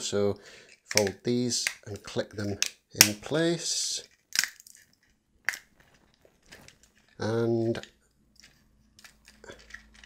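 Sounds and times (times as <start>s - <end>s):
plastic tabs clicking: 0.7s - 3.2s, 4.0s - 10.0s.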